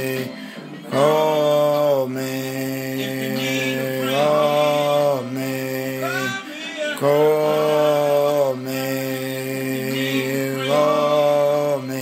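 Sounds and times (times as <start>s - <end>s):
man singing long notes: 0.0s - 12.0s.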